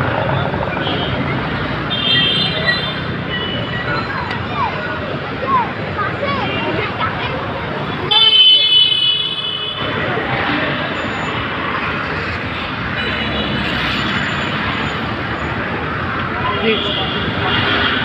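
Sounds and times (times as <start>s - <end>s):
crowd noise: 0.0s - 18.0s
street traffic: 0.0s - 18.0s
vehicle horn: 8.1s - 10.0s.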